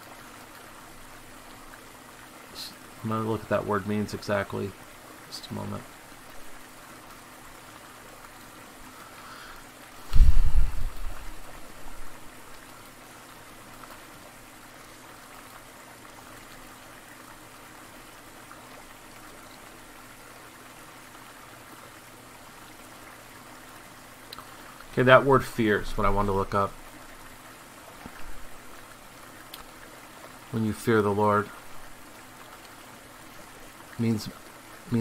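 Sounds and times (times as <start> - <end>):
mountain stream rushing and trickling: 0.0 - 35.0
loud low thump: 10.1 - 11.1.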